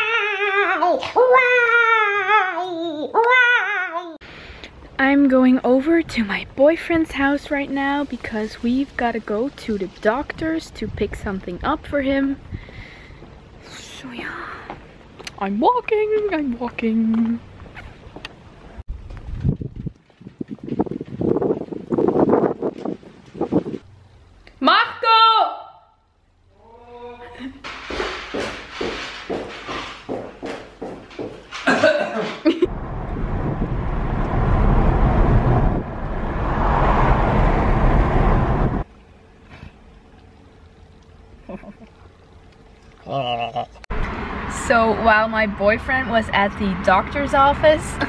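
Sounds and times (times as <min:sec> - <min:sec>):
wind buffeting a microphone: 0:09.8 - 0:13.3, 0:18.8 - 0:23.9, 0:32.7 - 0:38.8
faint steady hum: 0:38.8 - 0:43.8.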